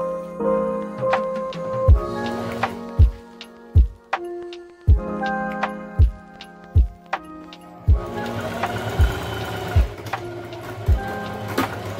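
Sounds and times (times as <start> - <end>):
background music: 0.0 - 11.9
deep kick drum: 1.9 - 2.1, 3.8 - 4.0, 4.9 - 5.1, 6.8 - 7.0, 7.9 - 8.1
electric sewing machine stitching: 8.0 - 11.9.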